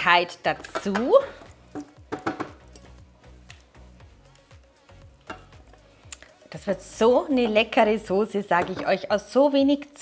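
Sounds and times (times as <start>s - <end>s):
spatula knocking on jug: 1.7s - 2.6s.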